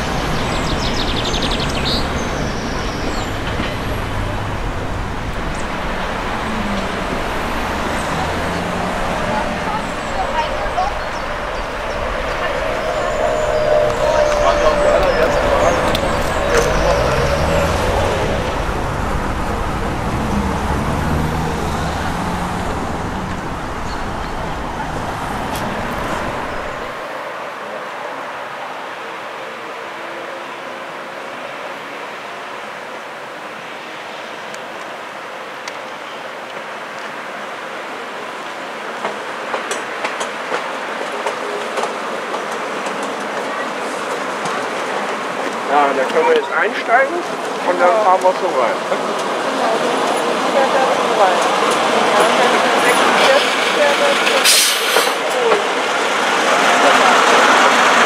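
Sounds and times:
motor vehicles passing: 0.0s - 27.1s.

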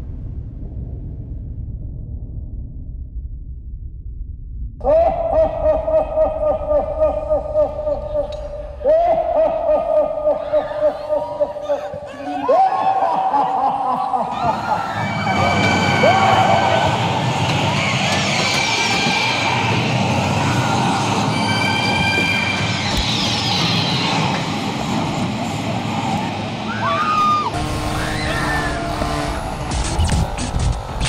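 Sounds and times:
dense noise and sound effects: 0.0s - 31.0s
wailing siren-like tone: 26.8s - 31.0s
music with deep bass: 27.6s - 31.0s.

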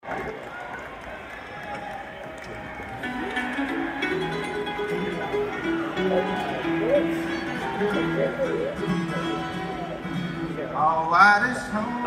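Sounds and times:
crowd noise: 0.0s - 12.0s
bluegrass string band: 3.0s - 12.0s.

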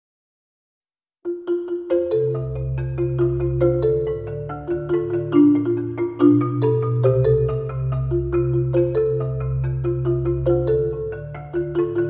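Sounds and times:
marimba played with mallets: 1.3s - 12.0s.

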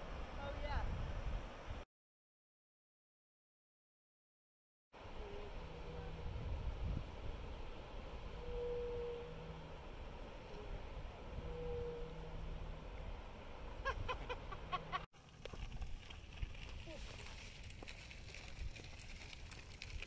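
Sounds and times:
steady outdoor hiss: 0.0s - 1.8s, 5.0s - 20.0s
wind rumbling on microphone: 0.0s - 1.8s, 5.0s - 14.5s, 15.4s - 20.0s.

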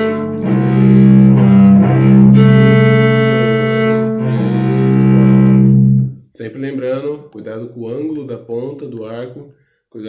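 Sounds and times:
bowed cello notes: 0.0s - 6.2s
man talking: 6.4s - 10.0s.

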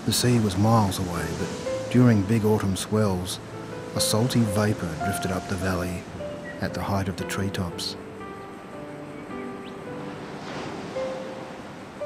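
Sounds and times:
gentle wash of noise: 0.0s - 8.0s, 9.8s - 12.0s
soft sustained background music: 0.0s - 12.0s.

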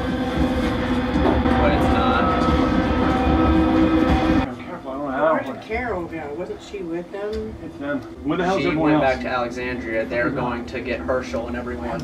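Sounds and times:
held music chords: 0.0s - 4.5s.

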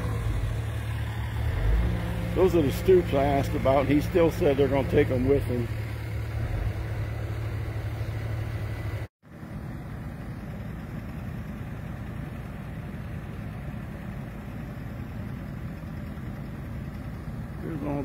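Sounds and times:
excavator diesel engines running: 0.0s - 18.0s.

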